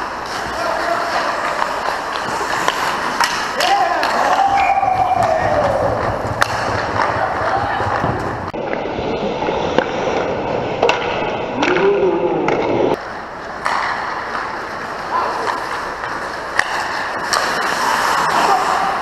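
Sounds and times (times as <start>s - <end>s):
skate blades scraping ice: 0.0s - 10.9s, 12.9s - 19.0s
hockey sticks clacking: 0.0s - 19.0s.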